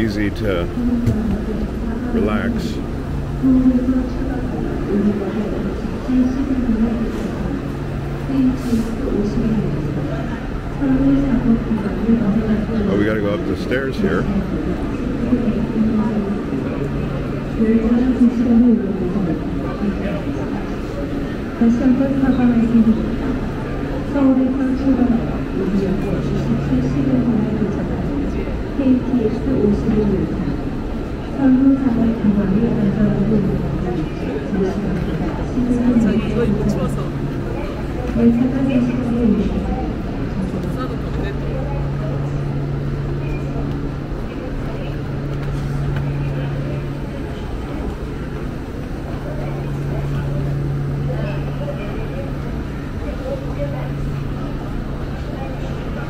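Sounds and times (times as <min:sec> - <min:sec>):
crowd talking: 0:00.0 - 0:56.0
steady low hum: 0:00.0 - 0:56.0
crowd shuffling footsteps: 0:44.9 - 0:46.3.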